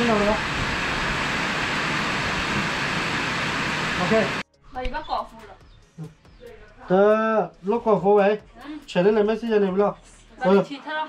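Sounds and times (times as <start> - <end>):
steady rushing noise: 0.0 - 4.4.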